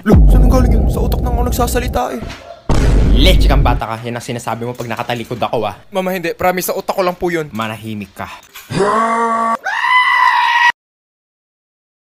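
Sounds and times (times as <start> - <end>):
young man screaming: 8.7 - 10.7.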